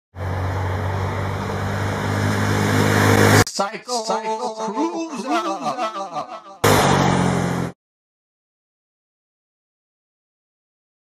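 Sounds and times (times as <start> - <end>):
motorcycle engine droning: 6.4 - 7.8.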